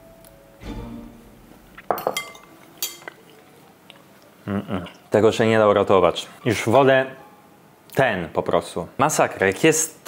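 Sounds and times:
cutlery clinking against glass bowl: 1.8 - 3.3.

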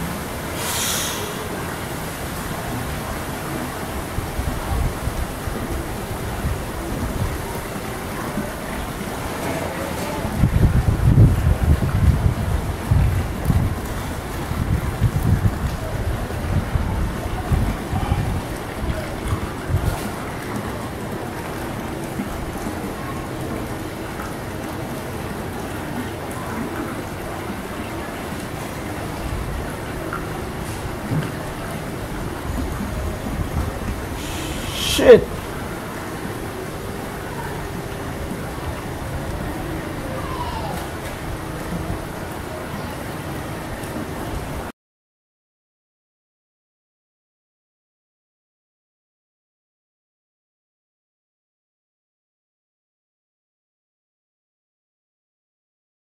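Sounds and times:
wind buffeting microphone: 3.9 - 9.3, 10.1 - 21.2, 29.1 - 34.7.

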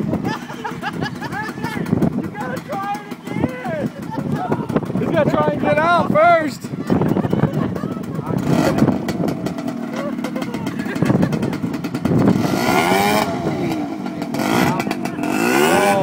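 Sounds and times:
atv engine revving: 0.0 - 16.0.

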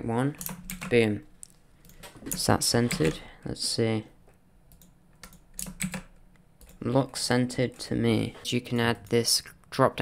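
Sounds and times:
keyboard and mouse clicks: 0.3 - 3.2, 4.7 - 7.9.

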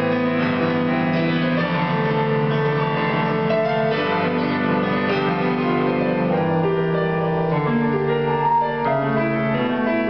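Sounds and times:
grand piano playing chords: 0.0 - 10.0.

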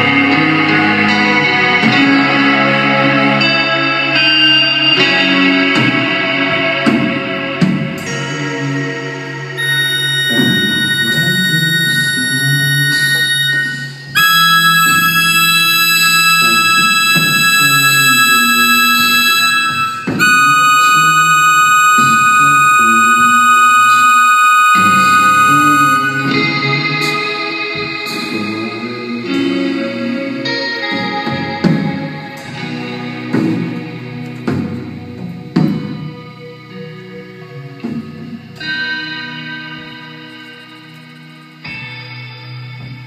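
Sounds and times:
guitar: 0.0 - 43.0
keyboard holding long chords: 0.0 - 43.0.

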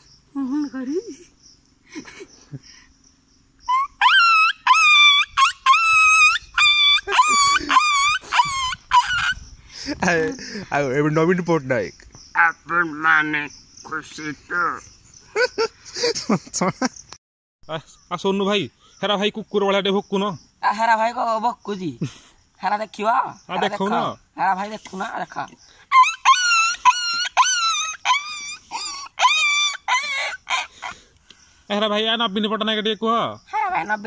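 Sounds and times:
insects chirring: 0.0 - 34.0
boy making wordless vocal sounds: 0.3 - 1.2
boy imitating dog whines: 3.6 - 9.4, 25.9 - 31.0.

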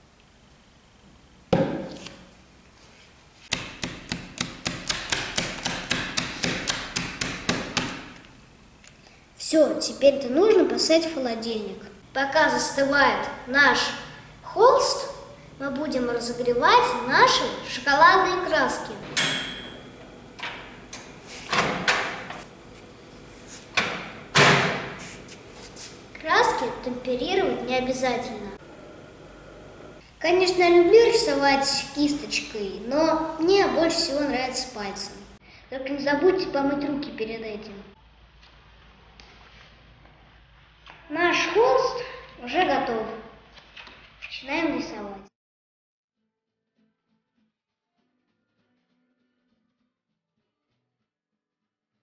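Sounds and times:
microwave door and knobs clunking: 19.0 - 22.4.

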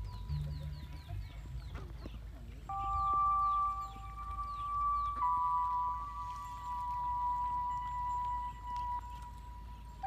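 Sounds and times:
background music sustained tones: 0.0 - 10.0
ducks peeping: 0.0 - 10.0.

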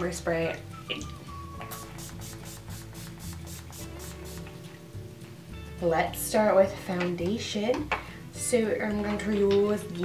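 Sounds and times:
background music: 0.0 - 10.0
mist bottle spraying: 1.6 - 4.6.

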